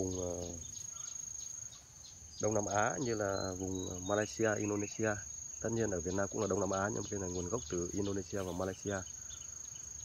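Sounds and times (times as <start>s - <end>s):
insect trilling: 0.0s - 10.0s.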